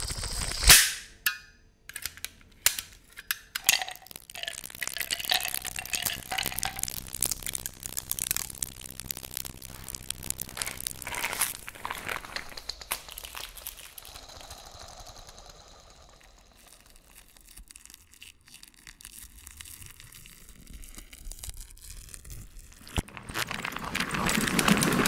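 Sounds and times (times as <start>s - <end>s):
crackling granulated noise texture: 0.0s - 0.7s, 3.4s - 17.8s
harsh noise texture: 3.5s - 16.1s.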